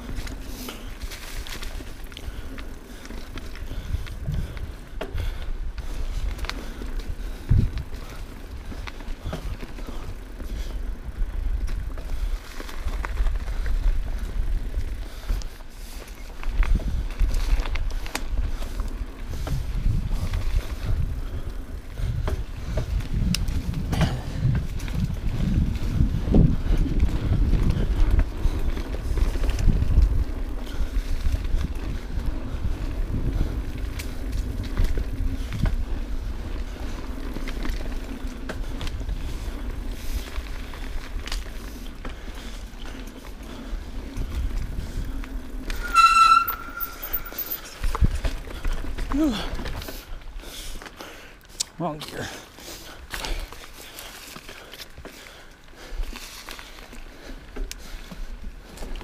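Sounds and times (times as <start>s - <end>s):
bike rattling over rocks: 0.0s - 51.2s
wind and tyre rumble: 0.0s - 59.0s
high-pitched ringing squeal: 45.7s - 47.7s.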